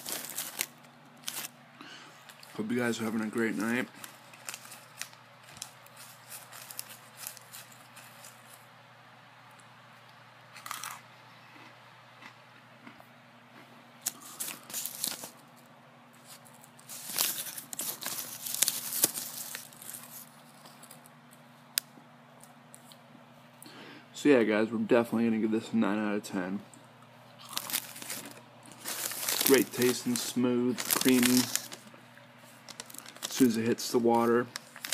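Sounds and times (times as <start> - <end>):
food pouch crinkling: 0.0 - 1.6, 2.3 - 8.6, 14.0 - 15.6, 16.2 - 21.4, 27.4 - 34.9
chewing and crunching: 10.6 - 15.3, 27.4 - 29.9.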